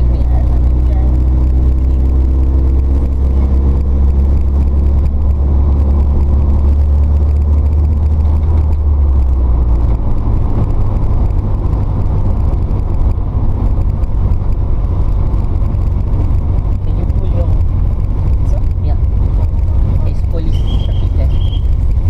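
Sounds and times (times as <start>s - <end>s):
van engine and road drone: 0.0s - 22.0s.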